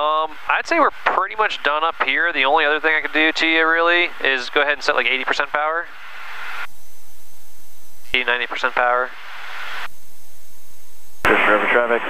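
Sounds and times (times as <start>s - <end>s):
intercom microphone hiss: 0.0s - 12.0s.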